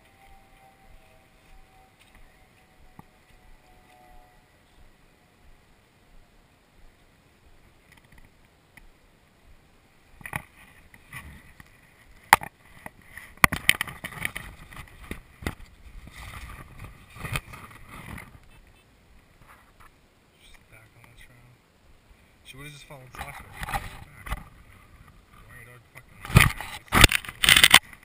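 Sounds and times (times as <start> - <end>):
rustling: 10.1 - 21.4, 22.2 - 28.0.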